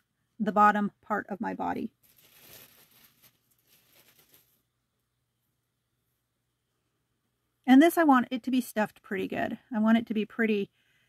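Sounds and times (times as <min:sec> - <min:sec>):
rustling of handled fabric: 0:02.0 - 0:04.7.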